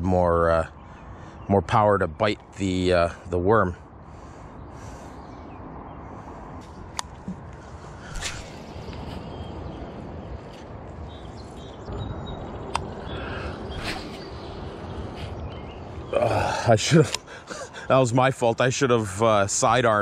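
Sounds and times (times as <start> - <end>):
outdoor rush: 0.0 - 20.0
fishing rod swishes: 8.0 - 9.3.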